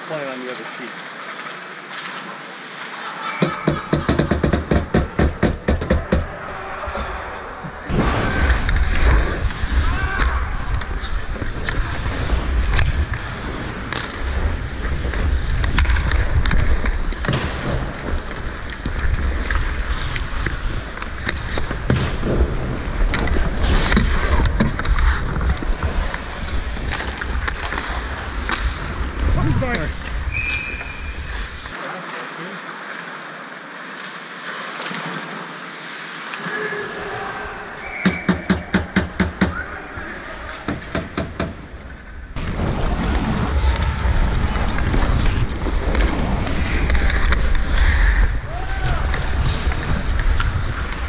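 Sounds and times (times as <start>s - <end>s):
sticks and puck knocking: 3.4s - 6.4s, 38.0s - 39.6s, 40.6s - 41.6s
skate blades scraping ice: 8.4s - 31.8s, 42.4s - 51.0s.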